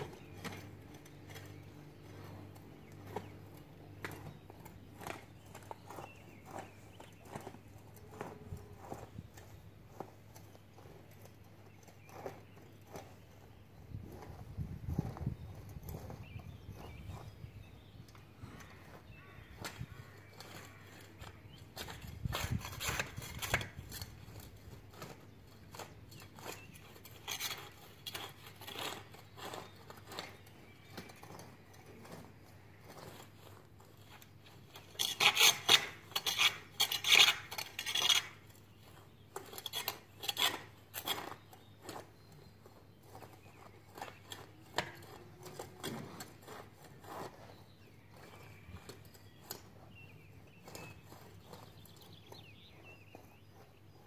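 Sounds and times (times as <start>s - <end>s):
hoe scraping through soil: 0.0s - 54.0s.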